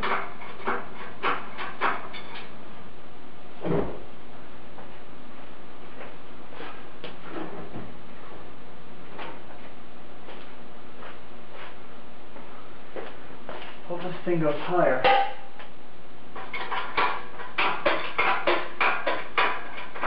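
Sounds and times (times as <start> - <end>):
heavy thump: 3.6 - 4.1.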